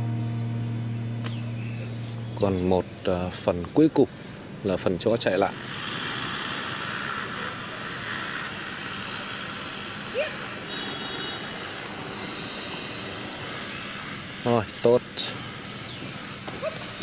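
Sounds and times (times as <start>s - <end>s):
low hum: 0.0s - 3.1s, 5.6s - 17.0s
short rising call: 5.6s - 17.0s.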